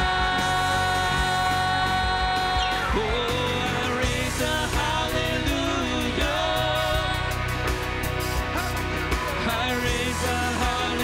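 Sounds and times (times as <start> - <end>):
drums: 0.0 - 11.0
worship band music: 0.0 - 11.0.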